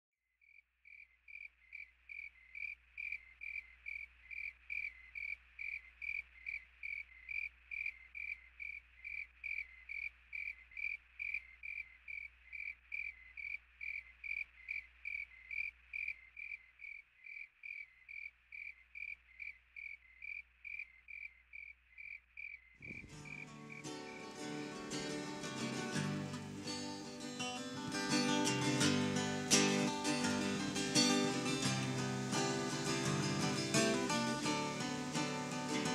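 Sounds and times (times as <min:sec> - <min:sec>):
cricket chirping: 0:00.4 - 0:35.9
acoustic guitar music: 0:22.9 - 0:35.9.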